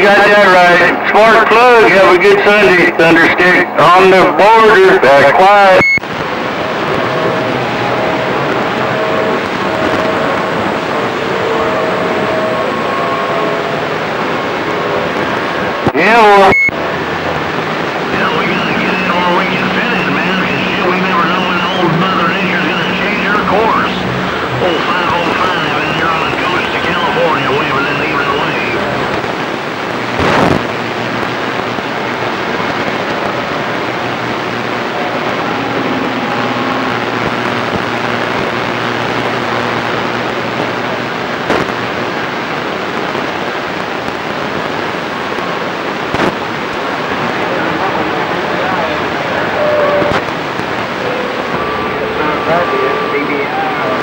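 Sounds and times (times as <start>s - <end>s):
garbled radio voices: 0.0s - 42.6s, 45.6s - 54.0s
radio static hiss: 0.0s - 54.0s
burst of noise: 4.6s - 54.0s.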